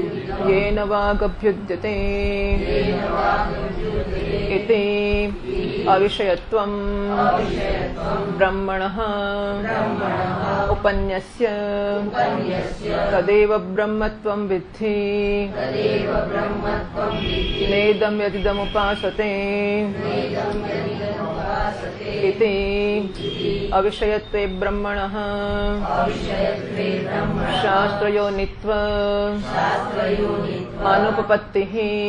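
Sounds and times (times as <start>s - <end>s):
group of voices chanting in unison: 0.0s - 0.7s, 2.6s - 6.2s, 7.0s - 8.6s, 9.6s - 10.9s, 12.0s - 13.3s, 15.5s - 18.0s, 19.8s - 22.4s, 23.1s - 23.8s, 25.8s - 28.2s, 29.4s - 31.4s
person chanting a held syllable: 15.5s - 31.4s.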